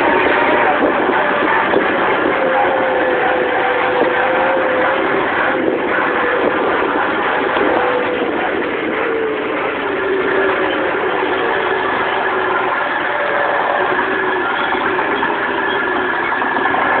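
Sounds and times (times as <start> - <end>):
engine running steadily: 0.0 - 17.0.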